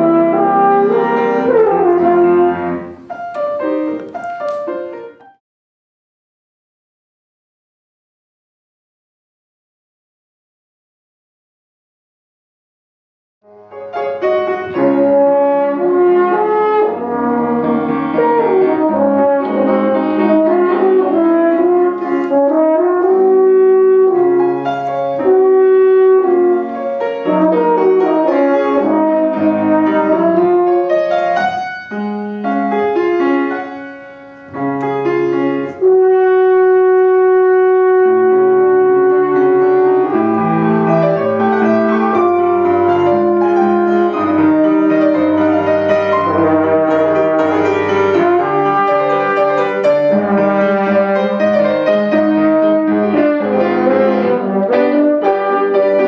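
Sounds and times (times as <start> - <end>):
french horn solo: 0.0 - 3.1, 14.5 - 31.6, 35.6 - 56.0
piano accompaniment: 0.0 - 5.4, 13.4 - 56.0.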